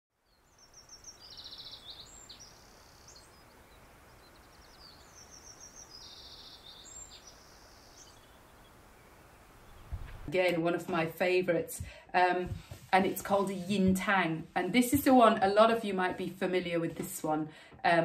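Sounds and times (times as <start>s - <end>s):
faint birdsong: 0.1s - 10.3s
soft steady hiss: 0.2s - 18.0s.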